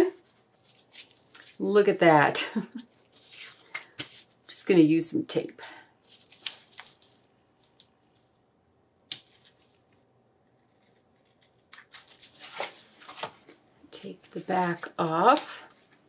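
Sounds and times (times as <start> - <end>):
paper rustling: 2.9 - 4.3, 6.0 - 8.3, 11.4 - 13.6.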